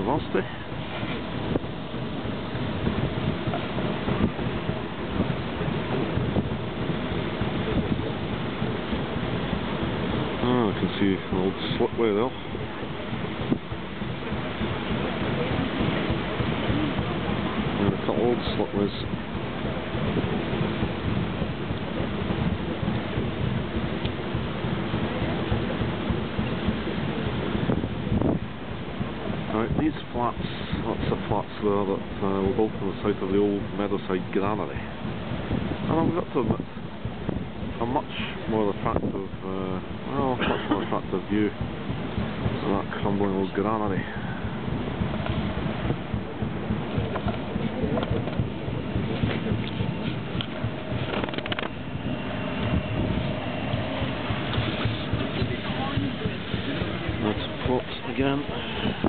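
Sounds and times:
paddle steamer running: 0.0 - 59.0
wind rumbling on microphone: 0.0 - 59.0.

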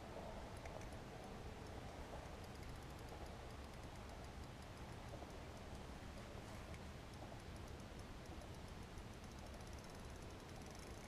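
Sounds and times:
faint background noise: 0.0 - 11.0
faint ticks: 0.0 - 11.0.

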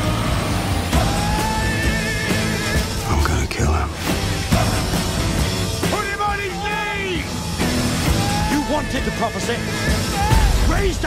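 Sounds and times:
dense trailer music: 0.0 - 11.0.

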